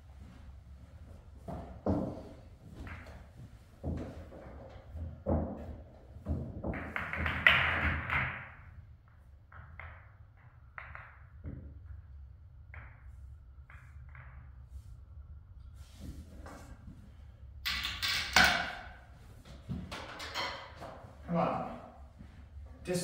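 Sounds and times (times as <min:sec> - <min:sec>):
pool balls knocking and clacking: 0:01.4 - 0:14.9, 0:17.6 - 0:21.3.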